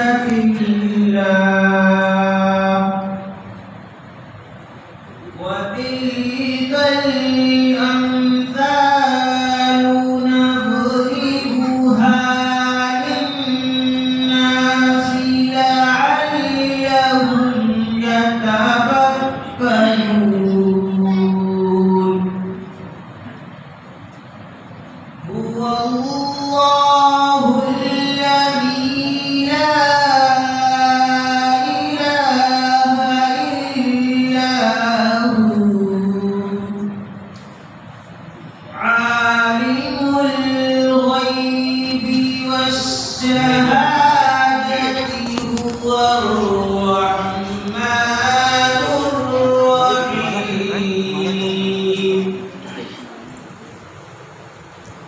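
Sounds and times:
man reciting melodically into microphone: 0.0 - 3.8, 5.2 - 22.9, 25.2 - 37.0, 38.6 - 53.1.

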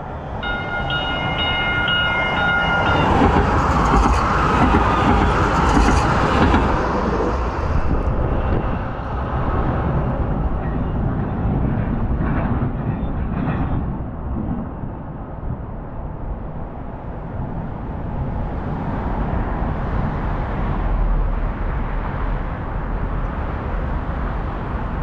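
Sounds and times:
train rumble: 0.0 - 25.0.

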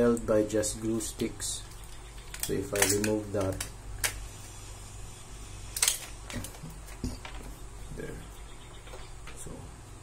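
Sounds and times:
clicks and knocks of toy parts: 2.2 - 4.2.

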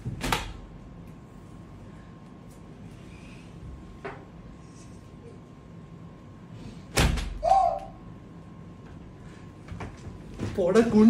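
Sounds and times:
short high yelp: 7.4 - 8.0.

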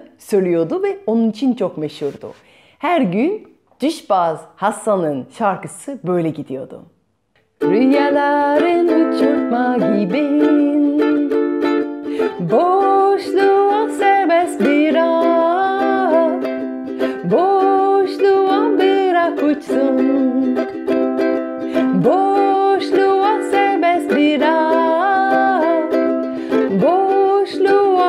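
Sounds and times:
woman singing folk melody: 7.4 - 28.0
ukulele strumming: 7.5 - 28.0.

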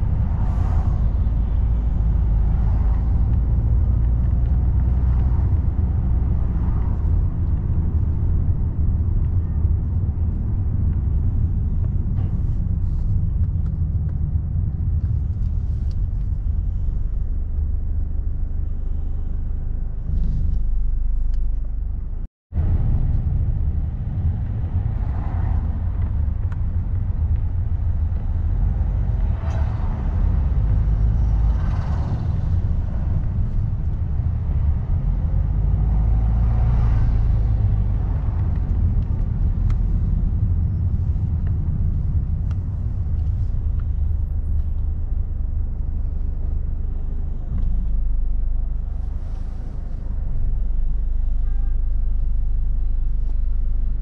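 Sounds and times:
car interior road noise: 0.0 - 54.0.

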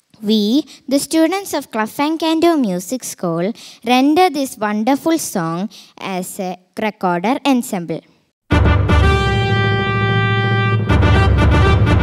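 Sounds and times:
drum kit: 8.5 - 12.0
ensemble music held chord: 8.5 - 12.0.

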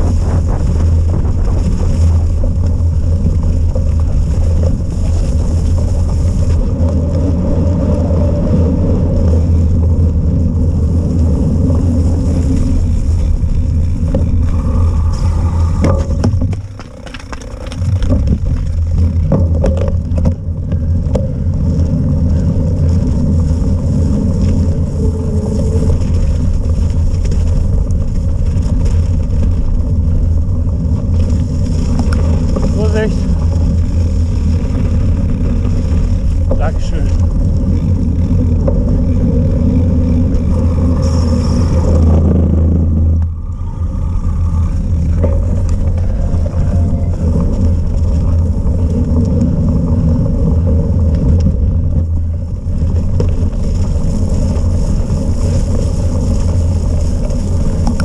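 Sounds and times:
bike rolling noise: 0.0 - 58.0
wind buffeting microphone: 0.0 - 58.0.

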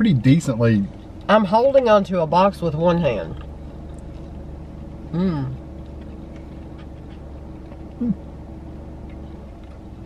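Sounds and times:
car cabin hum: 0.0 - 10.0
person humming mm: 5.1 - 5.6, 8.0 - 8.2.

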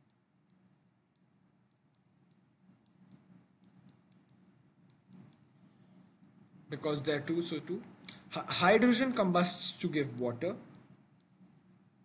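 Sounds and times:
stylus clicking on writing tablet: 0.0 - 5.4.

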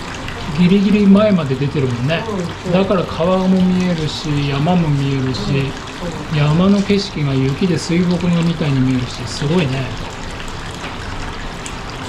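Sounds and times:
water pouring into a bath: 0.0 - 12.0.

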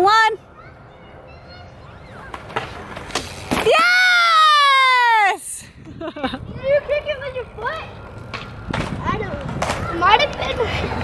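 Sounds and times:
bike tyres rolling over concrete: 0.5 - 5.1, 5.8 - 11.0.

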